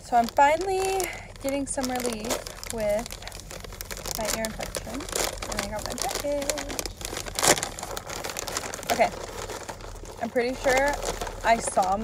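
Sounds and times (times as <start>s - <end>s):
package wrapping crinkling: 0.0s - 12.0s.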